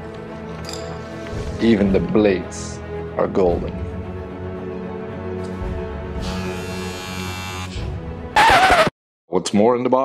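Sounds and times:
background music: 0.0s - 10.0s
hair clipper buzzing: 6.2s - 7.8s.

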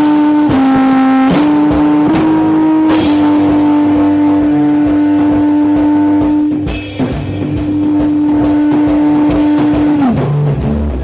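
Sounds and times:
drum kit: 0.0s - 11.0s
sustained electric guitars: 0.0s - 11.0s.

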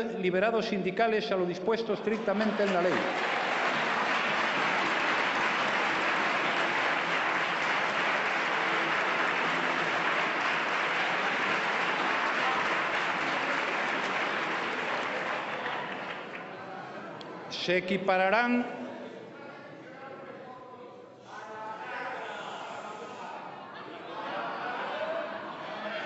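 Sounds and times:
large group applauding: 2.3s - 16.6s.

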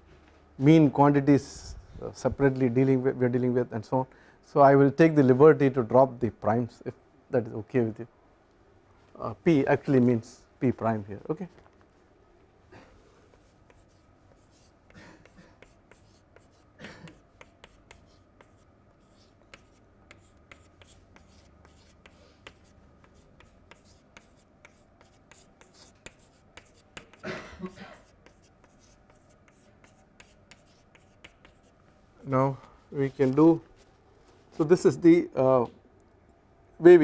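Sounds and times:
chalk tapping on chalkboard: 13.4s - 27.2s, 28.0s - 31.8s.

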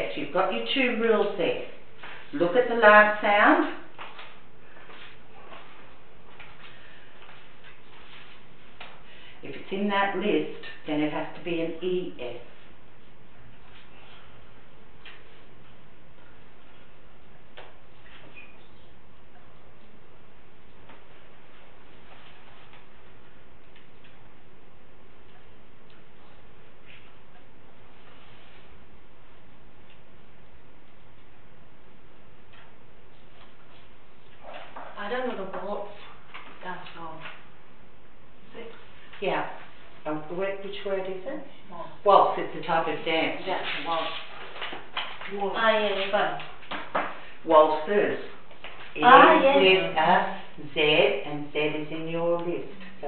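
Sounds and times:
low hum: 11.6s - 43.3s.

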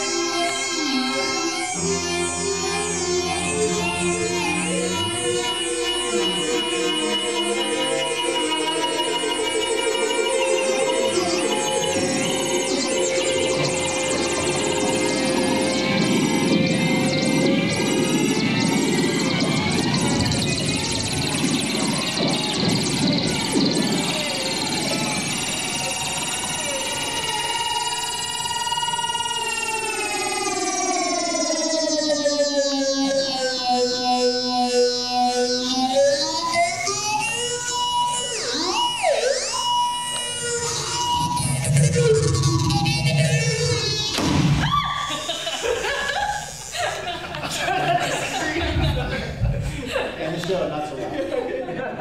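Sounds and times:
pitch-shifted buzzing drone: 0.0s - 50.0s.

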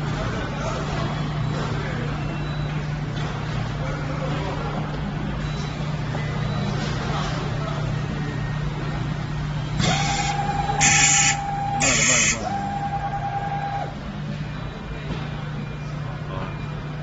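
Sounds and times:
cable cutting machine whine: 9.4s - 14.0s.

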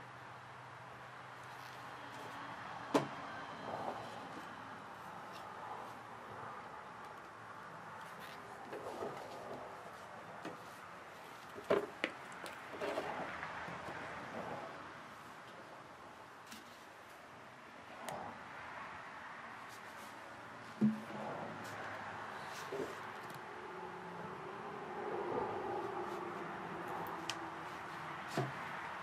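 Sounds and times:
soft knocks and rustles: 27.8s - 28.8s.

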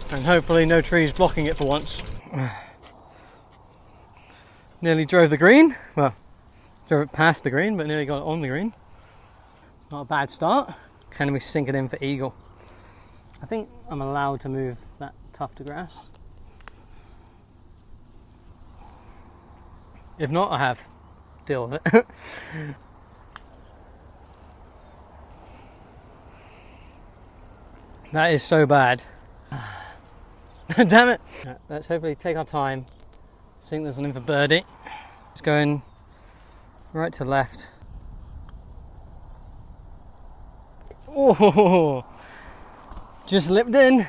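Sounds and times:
insect chorus chirring: 0.0s - 44.0s.

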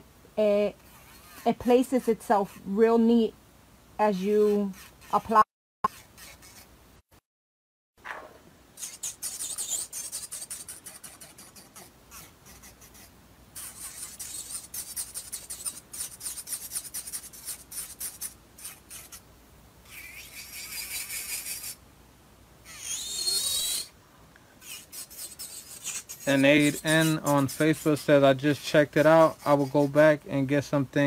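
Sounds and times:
nail tool scraping: 0.8s - 2.7s, 4.3s - 6.7s, 8.8s - 19.2s, 19.9s - 21.8s, 22.7s - 23.9s, 24.6s - 30.2s.

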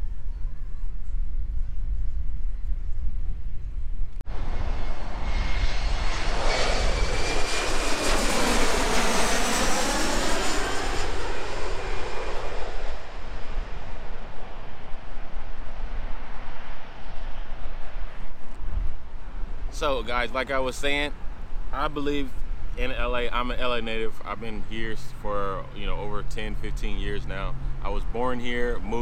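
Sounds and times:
high engine whine: 4.3s - 21.8s
jet airliner flying overhead: 4.3s - 29.0s.

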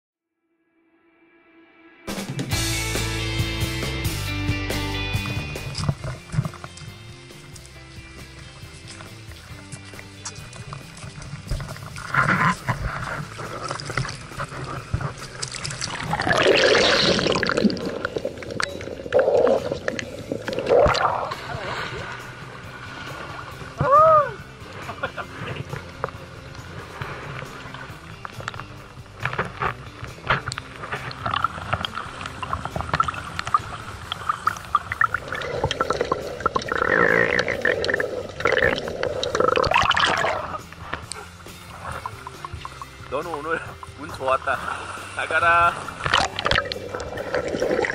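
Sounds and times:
background music with held tones: 0.7s - 47.9s
water sloshing and splashing: 5.2s - 47.9s
underwater bubbling: 5.3s - 47.9s.

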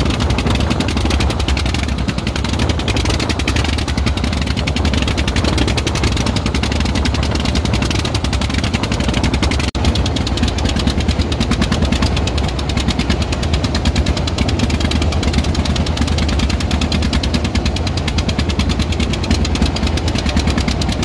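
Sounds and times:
boat engine chugging: 0.0s - 21.0s.

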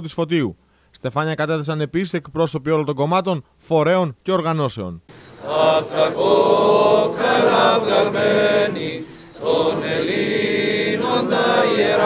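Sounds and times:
group singing a slow chant: 5.1s - 12.0s.

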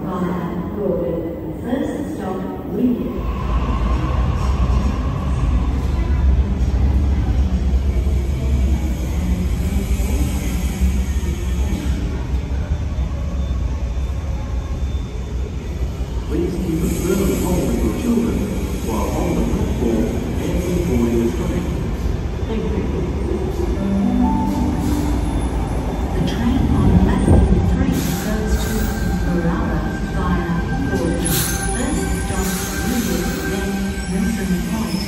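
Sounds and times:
voices on platform: 0.0s - 13.2s, 16.0s - 35.0s
electric train rumbling: 0.0s - 35.0s.

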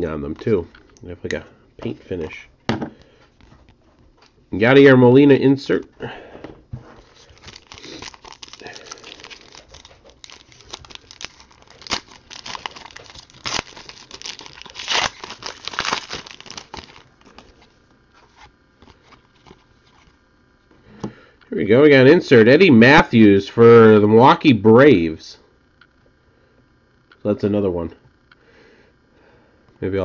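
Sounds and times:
foil wrapper tearing and crinkling: 7.0s - 17.6s.

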